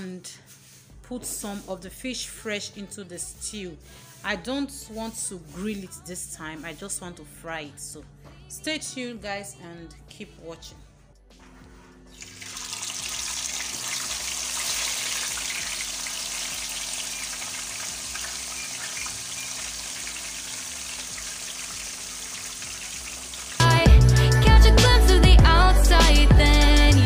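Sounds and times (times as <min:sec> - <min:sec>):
pop music with singing: 0:01.4 - 0:10.9, 0:23.6 - 0:27.0
fish sizzling in hot oil: 0:12.1 - 0:23.7.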